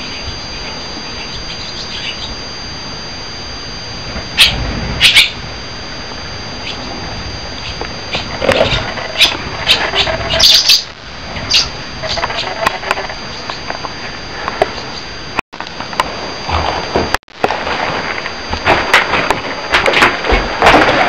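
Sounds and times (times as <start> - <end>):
small bird chirping: 0.0 - 2.4, 4.4 - 5.4, 7.6 - 12.6.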